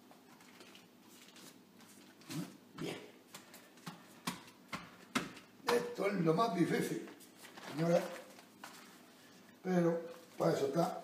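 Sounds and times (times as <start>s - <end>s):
baking paper rustling: 6.6s - 11.0s.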